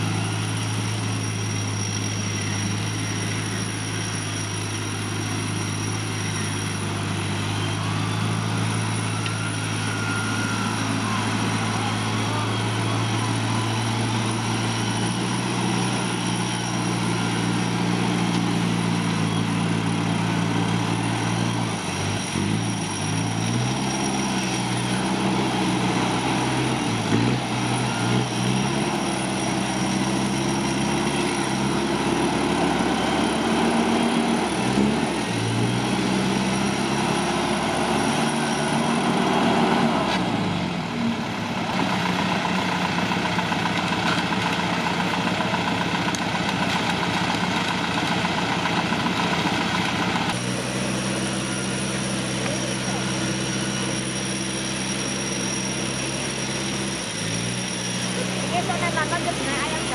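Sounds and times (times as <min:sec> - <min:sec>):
engine idling: 0:00.0 - 0:59.9
engine running under load: 0:00.0 - 0:59.9.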